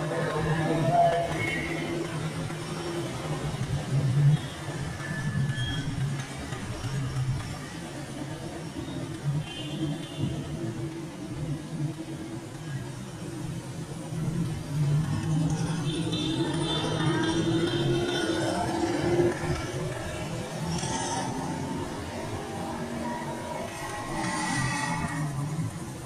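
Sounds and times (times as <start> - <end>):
motorbikes and cars passing: 0.0 - 26.0.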